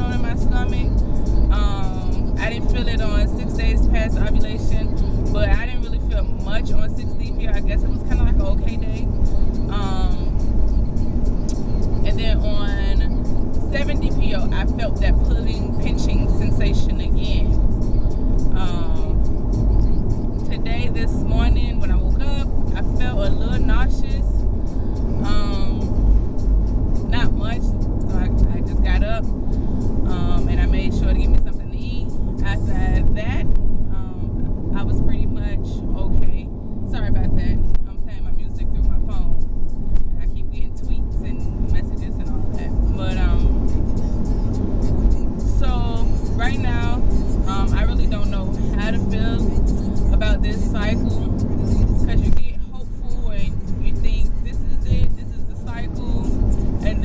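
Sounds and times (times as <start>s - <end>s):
music: 0.0s - 33.6s, 37.1s - 57.0s
car interior rumble: 0.0s - 57.0s
person speaking: 25.2s - 25.9s, 40.2s - 43.6s.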